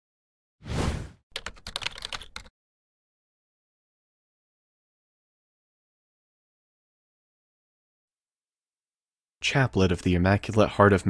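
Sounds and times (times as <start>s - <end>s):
keyboard typing clicks: 1.4s - 2.5s.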